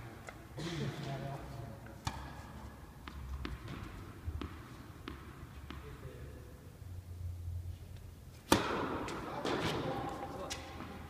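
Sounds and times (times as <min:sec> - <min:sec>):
tennis racket hitting ball: 0:02.0 - 0:05.9, 0:08.4 - 0:11.0.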